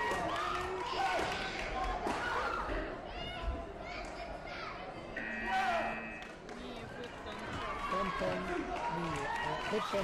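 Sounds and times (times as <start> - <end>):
voices in a sports hall: 0.0 - 10.0
steady electronic tone: 5.2 - 6.2.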